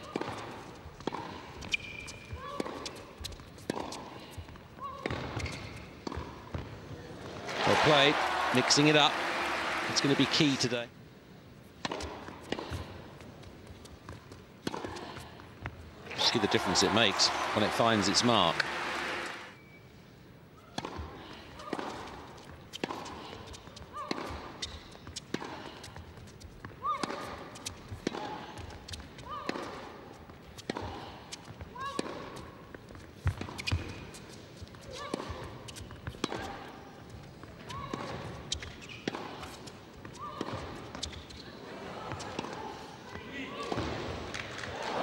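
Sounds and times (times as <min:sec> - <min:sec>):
racket hitting tennis ball: 0:00.0 - 0:04.2, 0:07.8 - 0:10.7, 0:11.8 - 0:13.0, 0:14.6 - 0:15.4, 0:16.0 - 0:19.4, 0:20.7 - 0:41.4
tennis ball bouncing: 0:00.0 - 0:04.2, 0:04.8 - 0:10.8, 0:11.8 - 0:19.4, 0:20.7 - 0:41.4.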